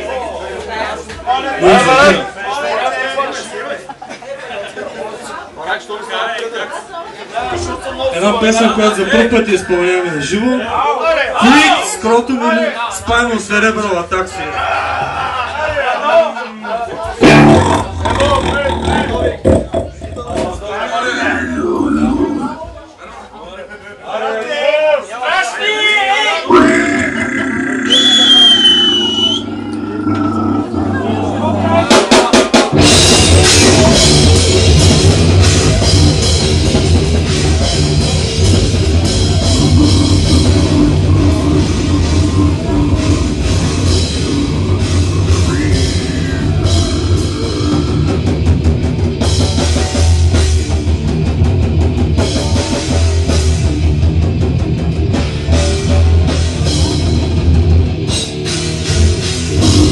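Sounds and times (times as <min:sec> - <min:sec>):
heavy metal band playing live: 0:17.2 - 0:20.6, 0:21.2 - 0:22.5, 0:26.5 - 0:59.9
distorted electric guitar: 0:17.2 - 0:22.6, 0:26.5 - 0:59.9
voices shouting: 0:39.0 - 0:48.2.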